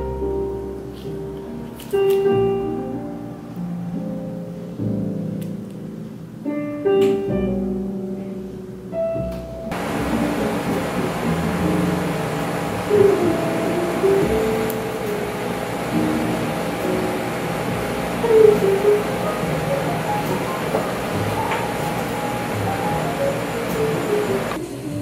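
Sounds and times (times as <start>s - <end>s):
piano music: 0.0s - 25.0s
room noise: 0.0s - 25.0s.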